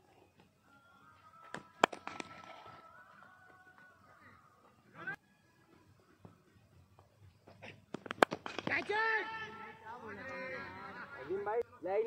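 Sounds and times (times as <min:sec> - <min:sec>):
sharp cracks: 0:07.9 - 0:09.0.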